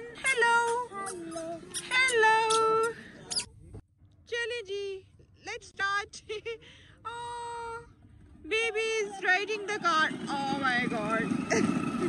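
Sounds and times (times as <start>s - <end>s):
child calling sing-song: 0.0s - 2.9s.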